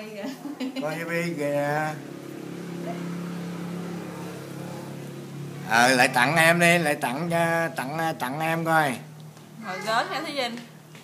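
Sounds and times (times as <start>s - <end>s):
steady low hum: 0.2s - 9.6s.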